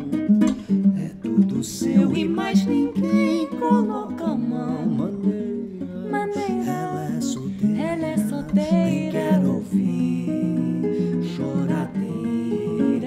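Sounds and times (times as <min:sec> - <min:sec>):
fingerpicked acoustic guitar: 0:00.0 - 0:13.0
man singing: 0:00.0 - 0:13.0.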